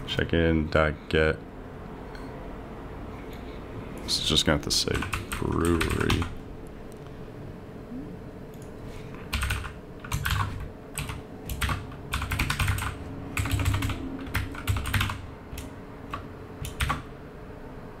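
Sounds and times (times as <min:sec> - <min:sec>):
computer keyboard typing: 0:04.9 - 0:06.4, 0:09.3 - 0:17.1.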